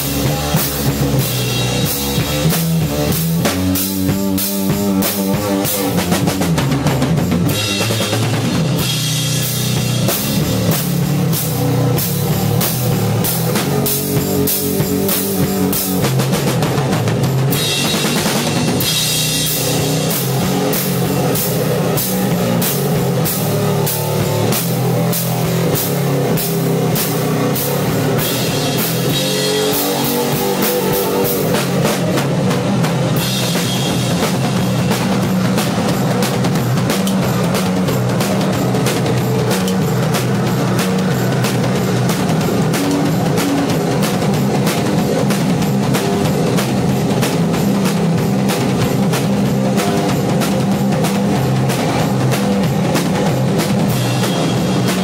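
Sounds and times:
low bass drone: 0.0 - 49.8
drum kit steady beat: 0.0 - 55.0
loud rock band playing: 0.0 - 55.0.

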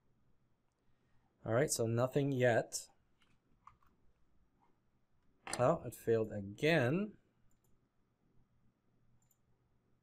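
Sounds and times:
faint computer mouse clicks: 9.2 - 9.4.

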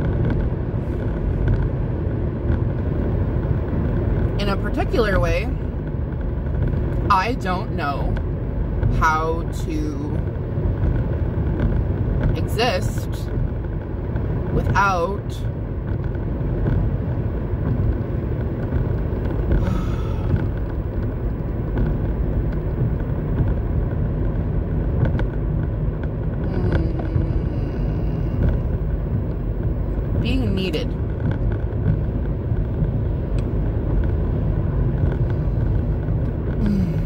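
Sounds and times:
car cabin road and engine rumble: 0.0 - 37.0.

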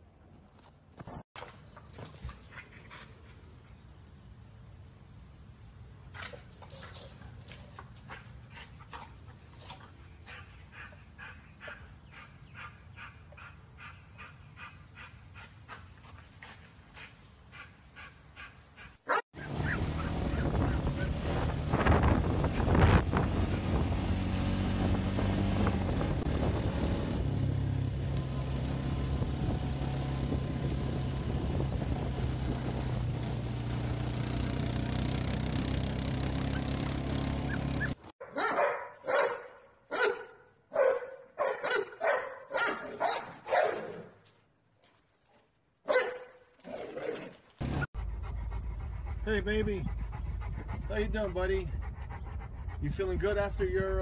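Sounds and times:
dog barking: 38.2 - 44.1, 45.9 - 46.4.

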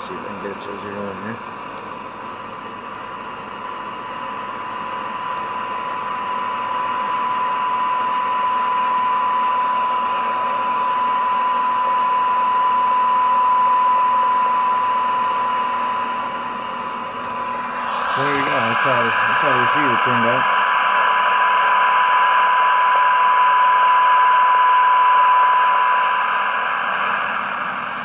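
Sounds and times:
radio test tone: 2.4 - 28.0
radio receiver hiss: 15.0 - 20.6.

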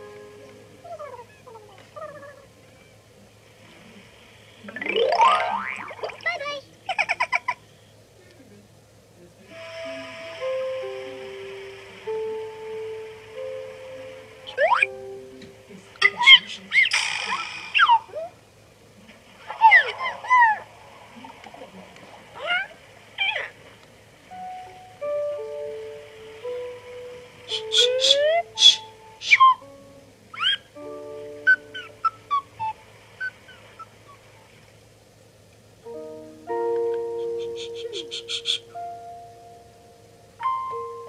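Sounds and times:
rising cartoon tone sweep: 4.8 - 6.4
background music: 9.6 - 15.8, 24.4 - 30.1, 35.9 - 41.0
squeaky cartoon chirps: 14.5 - 14.9, 16.0 - 18.3, 27.5 - 29.6, 37.3 - 38.8.

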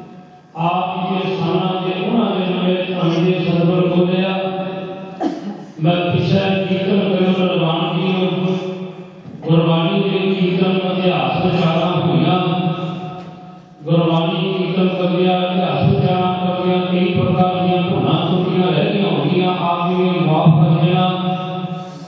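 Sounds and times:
man chanting into a microphone: 0.0 - 5.1, 5.8 - 22.0.

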